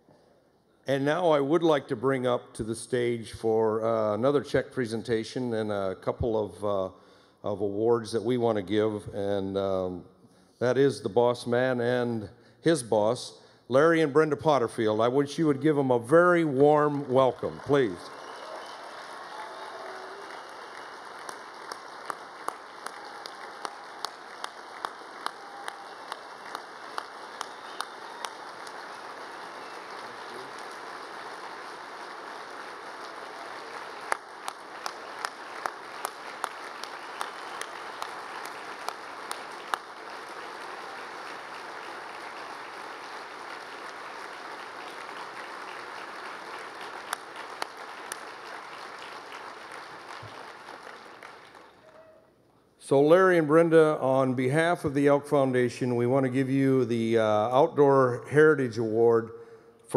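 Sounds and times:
audience applauding: 16.1 - 52.3
single claps close to microphone: 20.4 - 28.9, 33.0 - 52.0.

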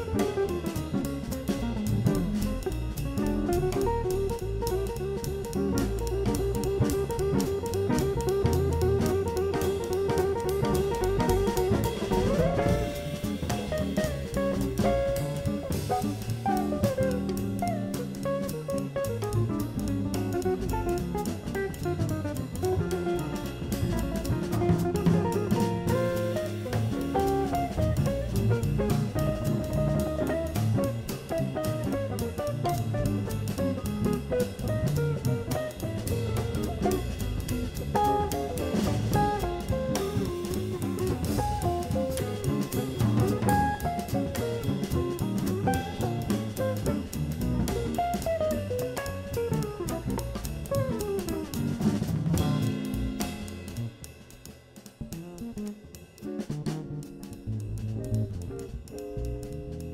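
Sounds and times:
drum kit: 0.0 - 59.9
electric bass: 0.0 - 59.9.

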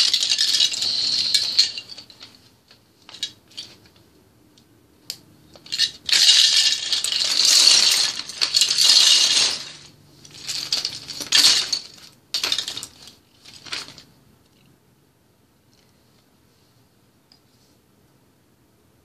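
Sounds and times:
plastic toy bricks clattering: 0.0 - 4.0, 5.5 - 14.1.

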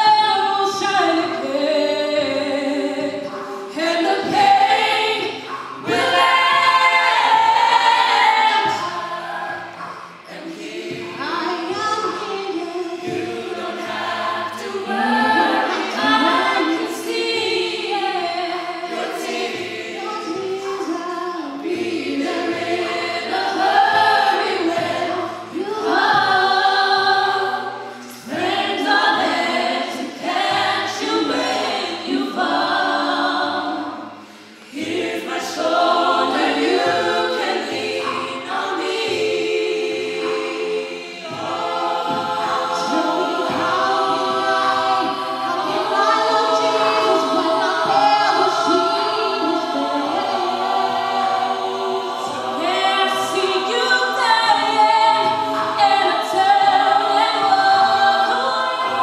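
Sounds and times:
a cappella group singing in harmony: 0.0 - 59.0.

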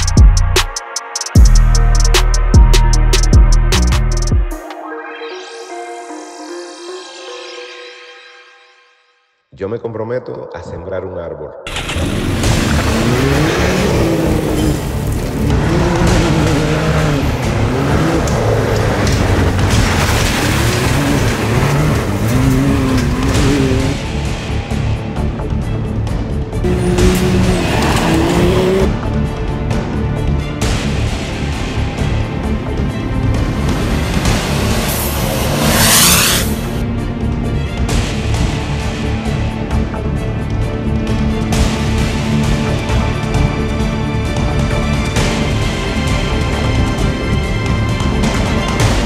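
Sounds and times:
background music: 0.0 - 49.0
tyres on gravel: 11.7 - 24.0
vehicle engine revving: 11.7 - 24.2, 26.6 - 29.3, 33.1 - 36.8.

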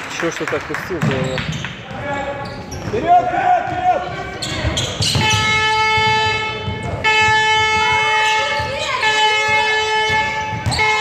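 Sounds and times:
horn blast: 5.2 - 11.0.

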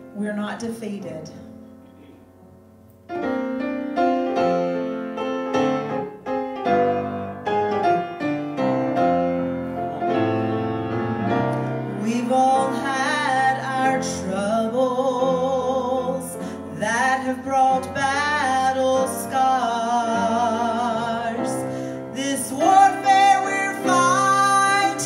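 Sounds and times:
piano chords: 0.0 - 25.0
person singing with vibrato: 11.6 - 25.0.

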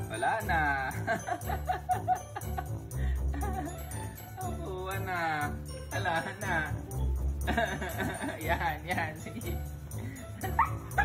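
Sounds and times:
background music with low beat: 0.0 - 11.0
dog whining and yipping: 10.5 - 11.0.

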